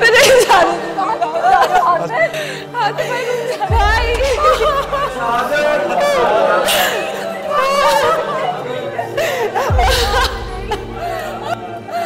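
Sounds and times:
people crying out in grief: 0.0 - 12.0
people sobbing: 0.0 - 12.0.

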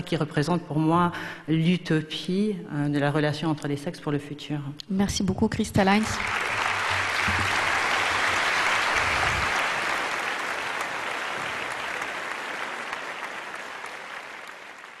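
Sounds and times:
audience applauding: 6.0 - 15.0.

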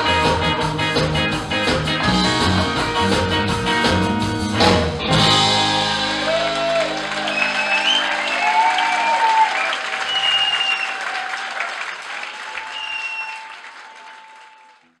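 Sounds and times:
audience applause: 5.6 - 15.0.

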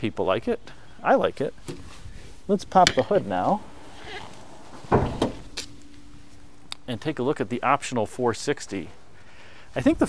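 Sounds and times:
faint steady hum: 0.0 - 10.0
car hood latch clunk: 4.7 - 5.8.

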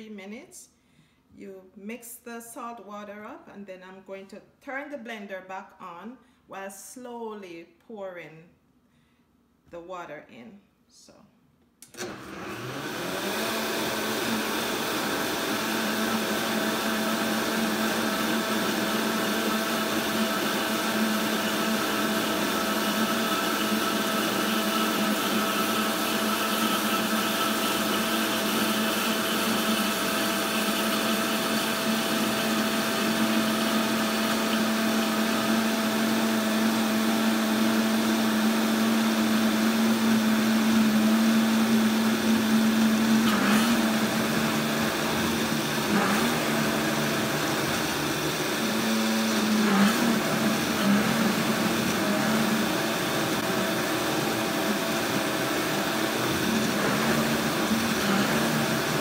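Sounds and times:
blender running on high: 11.9 - 59.0.

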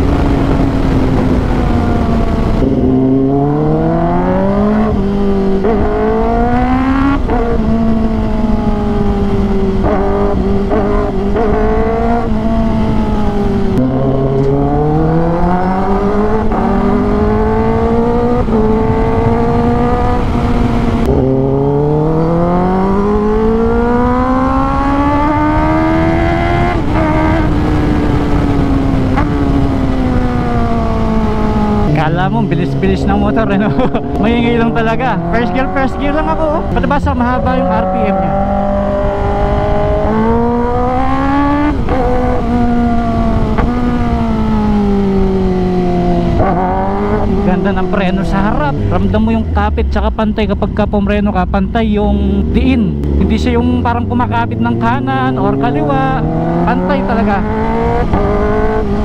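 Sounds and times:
motorcycle engine revving: 0.0 - 59.0
wind rushing: 0.0 - 59.0.

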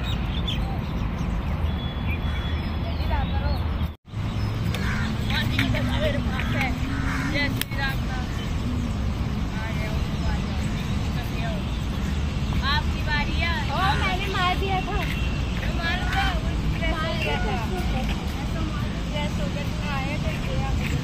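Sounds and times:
birds chirping: 0.0 - 21.0.

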